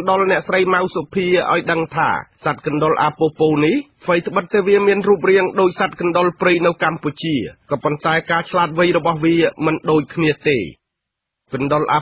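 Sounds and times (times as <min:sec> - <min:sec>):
radio news voice talking: 0:00.0 - 0:10.9.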